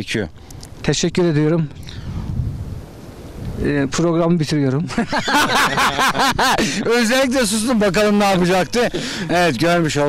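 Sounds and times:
wind buffeting microphone: 1.8 - 4.3
man speaking: 6.6 - 10.0.

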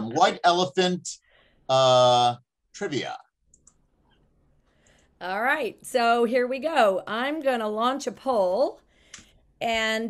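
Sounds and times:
person speaking: 0.0 - 1.1, 1.7 - 3.2.

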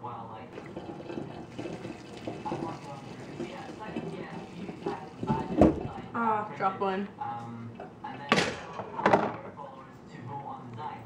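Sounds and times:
water pouring into metal sink: 0.6 - 6.1.

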